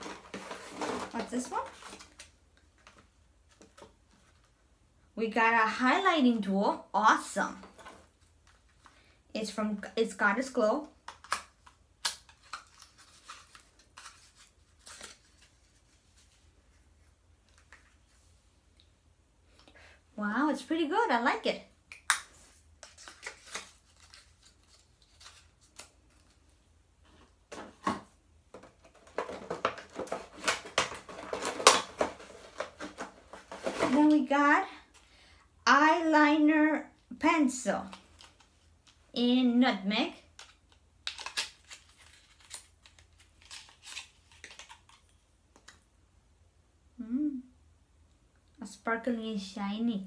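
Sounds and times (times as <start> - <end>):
plastic packaging crinkling: 40.4 - 45.2.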